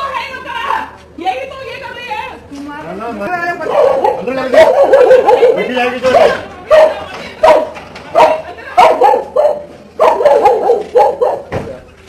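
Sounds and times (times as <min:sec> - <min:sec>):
dog barking: 0:03.6 - 0:11.5.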